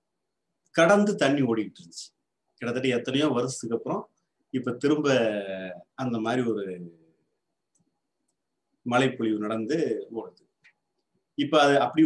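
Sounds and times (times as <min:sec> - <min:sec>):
man speaking: 0:00.7 - 0:07.2, 0:08.8 - 0:10.5, 0:11.3 - 0:12.0.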